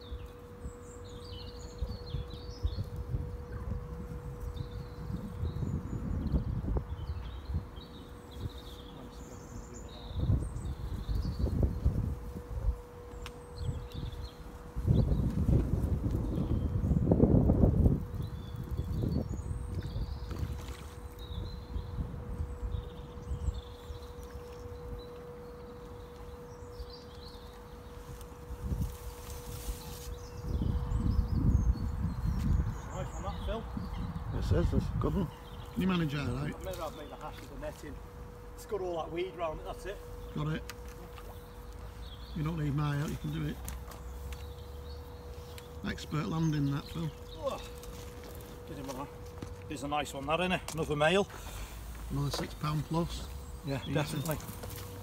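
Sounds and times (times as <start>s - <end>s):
faint steady hum: 0.0s - 33.0s, 33.6s - 55.0s
low rumbling on microphone: 0.0s - 38.6s
small birds chirping: 0.0s - 55.0s.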